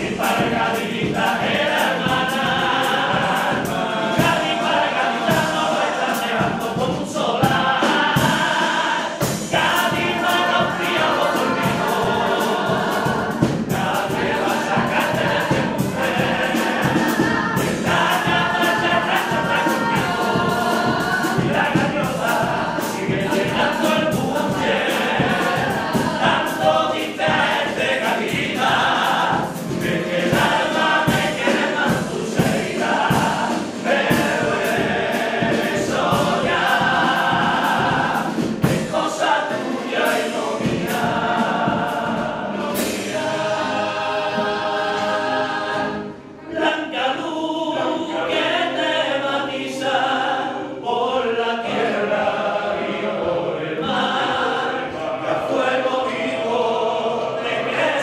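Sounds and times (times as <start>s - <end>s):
strummed guitars: 0.0s - 49.0s
men's chorus singing in harmony: 0.0s - 58.0s.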